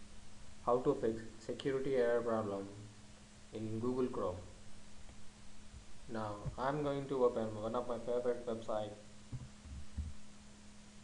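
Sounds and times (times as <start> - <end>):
low electrical hum: 0.0 - 11.0
keyboard typing thumps: 9.3 - 10.2.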